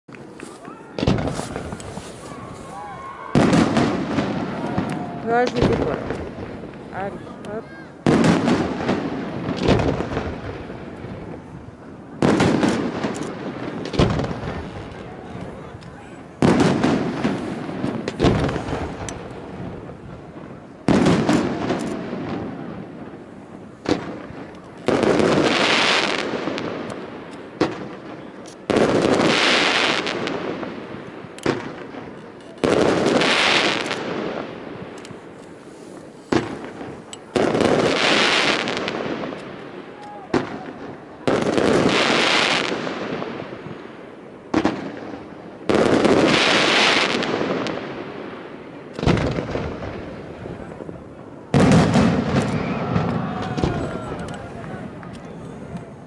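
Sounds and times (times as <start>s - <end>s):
fireworks bursting bangs: 0.1s - 56.0s
firework launch thumps: 0.4s - 2.5s.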